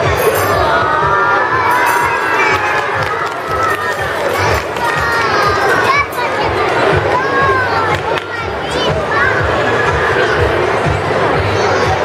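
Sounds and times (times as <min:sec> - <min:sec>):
children shouting and cheering: 0:00.0 - 0:10.6.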